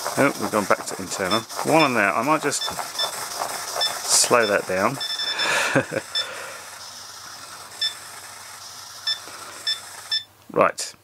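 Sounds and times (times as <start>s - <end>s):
steady background hum: 0.0s - 11.0s
short high electronic beeps: 1.3s - 3.2s, 3.8s - 6.3s, 7.8s - 8.1s, 9.0s - 10.3s.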